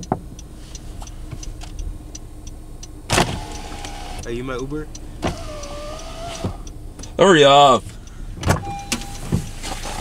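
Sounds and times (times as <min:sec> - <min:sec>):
faint ticking: 0:00.0 - 0:09.6
power window motor hum: 0:03.1 - 0:04.2, 0:05.2 - 0:06.7
car door clicks: 0:03.1 - 0:04.3, 0:05.2 - 0:07.1, 0:08.4 - 0:10.0.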